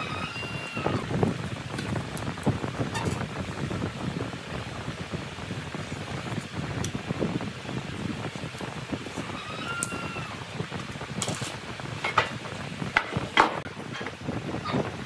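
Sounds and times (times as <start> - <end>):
wind-like rumble and hiss: 0.0 - 15.0
wooden boards knocking on workbench: 13.0 - 13.6.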